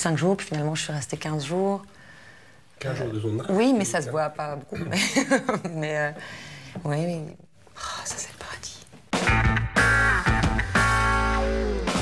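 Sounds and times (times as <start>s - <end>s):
woman whispering: 7.7s - 9.0s.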